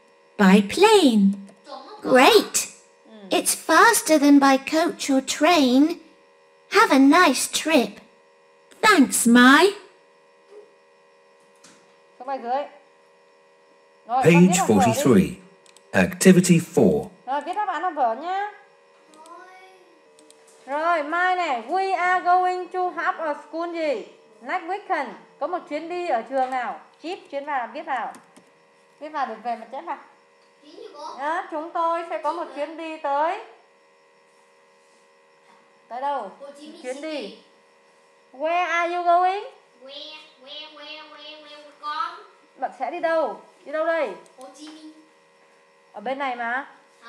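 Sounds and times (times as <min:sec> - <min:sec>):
electrical hum: 0:00.0 - 0:30.6
person speaking: 0:00.4 - 0:02.7, 0:03.3 - 0:06.0, 0:06.7 - 0:08.0, 0:08.8 - 0:09.8, 0:14.2 - 0:15.4, 0:16.0 - 0:17.1.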